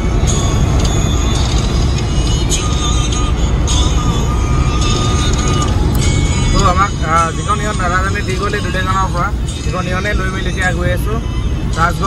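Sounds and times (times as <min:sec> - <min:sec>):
background music: 0:00.0 - 0:12.0
car road and engine rumble: 0:00.0 - 0:12.0.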